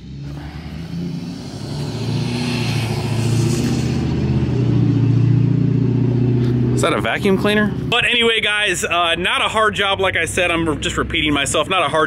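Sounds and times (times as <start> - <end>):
high engine whine: 0.0 - 12.0
pickup truck driving past: 0.0 - 12.0.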